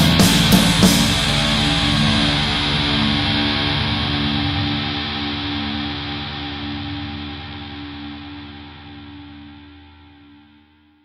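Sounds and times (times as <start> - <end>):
low pulsing note: 0.0 - 9.5
electric guitar chord ringing: 0.0 - 10.5.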